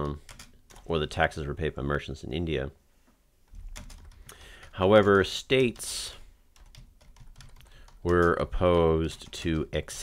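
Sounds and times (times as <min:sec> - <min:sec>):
computer keyboard typing: 0:00.0 - 0:00.9, 0:03.5 - 0:10.0.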